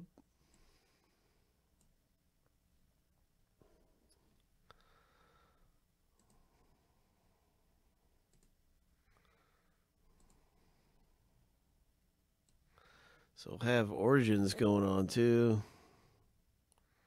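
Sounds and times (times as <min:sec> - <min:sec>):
faint clicks: 0:06.2 - 0:06.6, 0:08.3 - 0:09.4, 0:10.1 - 0:10.5.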